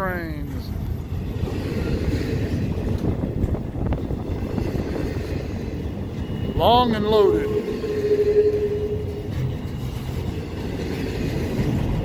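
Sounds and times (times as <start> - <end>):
freight train wheels rumbling: 0.0 - 12.0.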